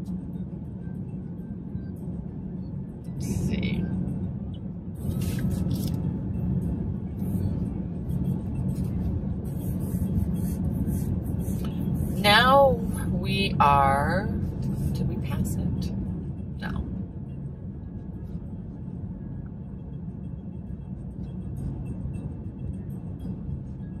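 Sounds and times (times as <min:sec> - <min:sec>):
car road and engine rumble: 0:00.0 - 0:24.0
faint music: 0:00.0 - 0:24.0.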